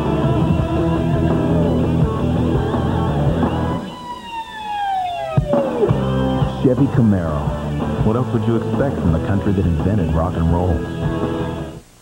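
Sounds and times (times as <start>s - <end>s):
falling whistle tone: 2.9s - 6.0s.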